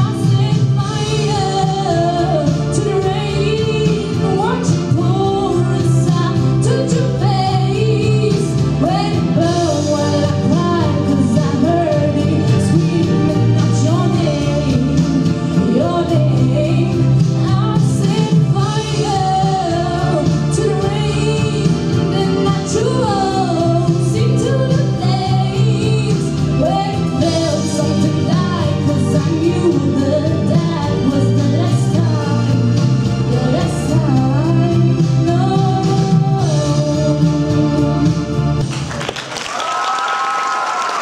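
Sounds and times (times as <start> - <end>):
woman singing into microphone: 0.0 - 38.3
musical accompaniment: 0.0 - 41.0
audience applauding: 38.6 - 41.0
high-pitched cheer: 38.9 - 41.0.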